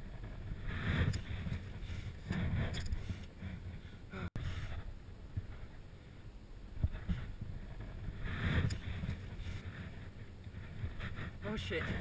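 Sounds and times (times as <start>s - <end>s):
microphone handling noise: 0.0s - 5.8s, 6.8s - 12.0s
muffled wind rumble: 0.0s - 12.0s.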